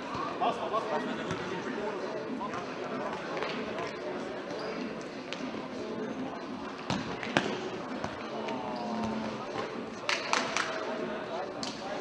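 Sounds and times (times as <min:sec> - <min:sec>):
babble of voices: 0:00.0 - 0:12.0.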